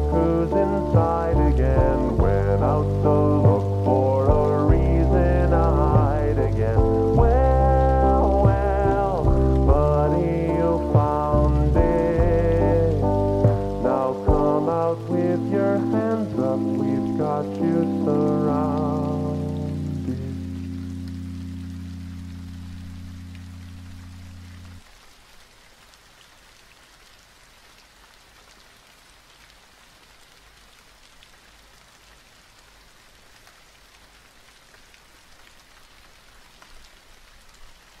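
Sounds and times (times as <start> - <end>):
muffled slowed song chord: 0.0 - 24.8
rain on a hard surface: 0.0 - 38.0.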